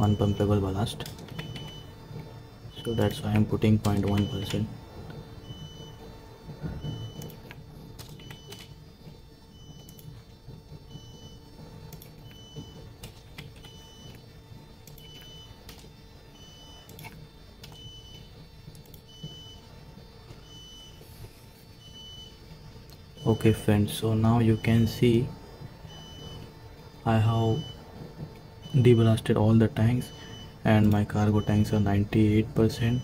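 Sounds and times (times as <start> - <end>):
electrical hum: 0.0 - 33.0.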